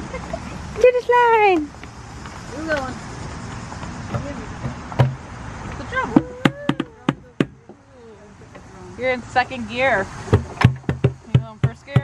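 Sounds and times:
knocks on metal structure: 0:04.6 - 0:05.2, 0:10.3 - 0:12.0.

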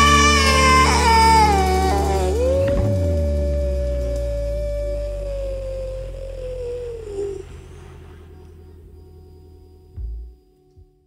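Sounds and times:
long held note sliding down: 0:00.0 - 0:10.0
low bass: 0:00.0 - 0:11.0.

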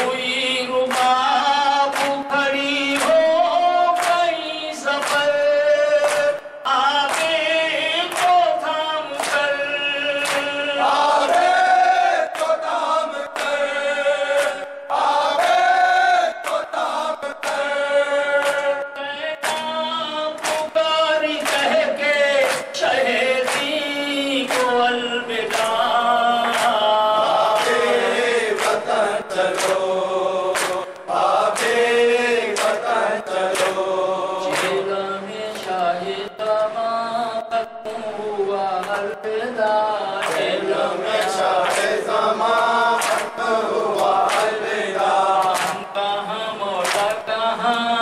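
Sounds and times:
man and mourners chanting: 0:00.0 - 0:48.0.

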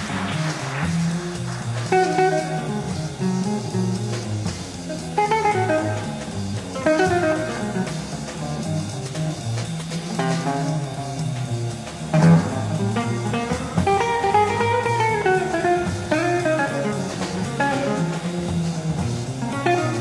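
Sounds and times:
guitar chords struck: 0:00.0 - 0:20.0
jazz guitar: 0:00.0 - 0:20.0
walking bass line: 0:00.0 - 0:20.0.

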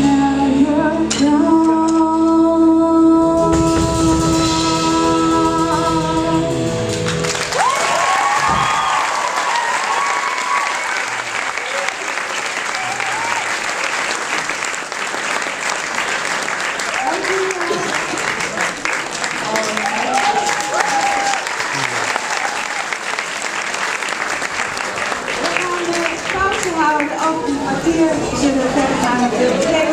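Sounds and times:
band chord: 0:00.0 - 0:07.6
audience applauding: 0:06.9 - 0:27.9
voices cheering: 0:07.5 - 0:14.0, 0:16.8 - 0:23.2.

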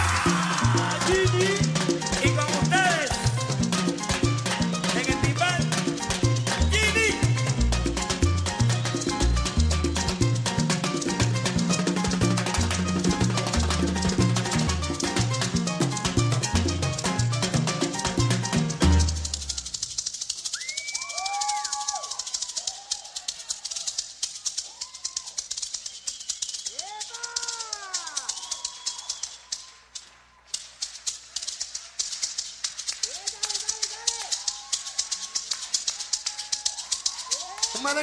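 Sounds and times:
maraca shaking: 0:00.0 - 0:38.0.

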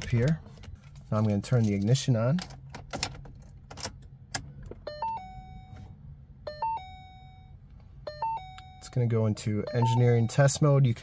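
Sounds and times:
car electronic warning chime: 0:04.8 - 0:11.0.

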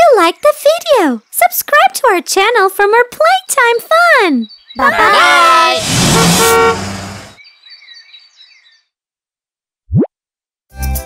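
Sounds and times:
faint bird chirping: 0:00.1 - 0:05.5, 0:07.2 - 0:09.0
cartoon pop sliding upward: 0:09.9 - 0:10.1.

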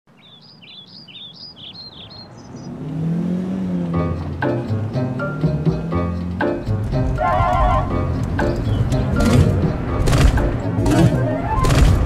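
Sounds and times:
birds chirping: 0:00.1 - 0:11.6
car engine humming: 0:01.0 - 0:12.0.

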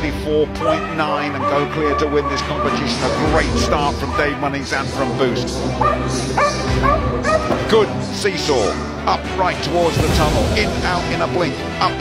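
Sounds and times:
background music: 0:00.0 - 0:12.0
dog barking: 0:05.8 - 0:07.6.

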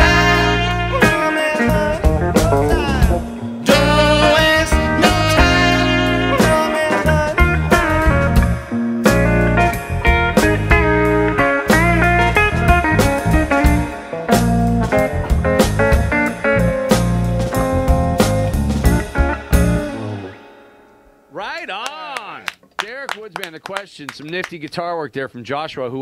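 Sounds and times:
live rock band playing: 0:00.0 - 0:21.0
lead guitar solo: 0:00.0 - 0:22.4.

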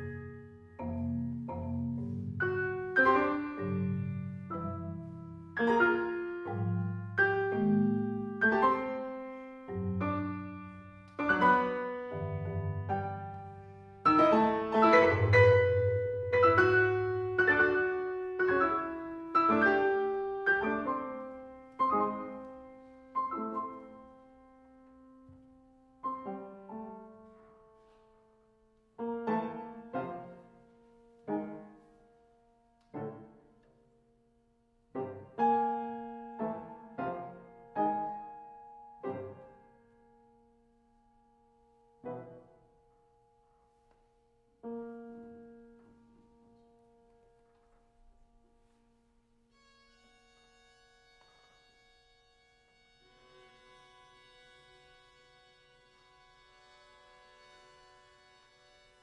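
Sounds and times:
grand piano chords ringing: 0:00.0 - 0:59.0.

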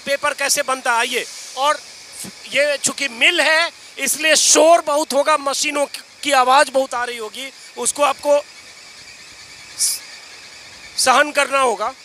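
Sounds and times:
machinery droning: 0:00.0 - 0:12.0.

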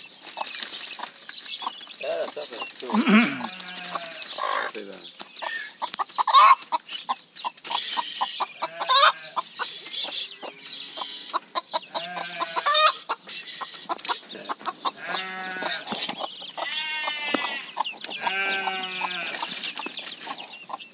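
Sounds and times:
hen clucking: 0:00.0 - 0:20.9.

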